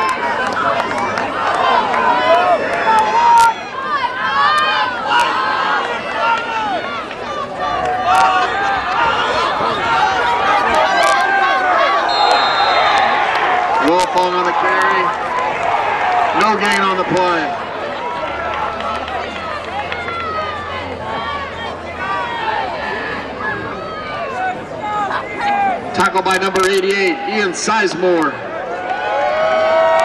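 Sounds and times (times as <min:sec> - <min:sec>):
crowd voices talking and calling out: 0:00.0 - 0:30.0
sharp claps: 0:18.2 - 0:20.5.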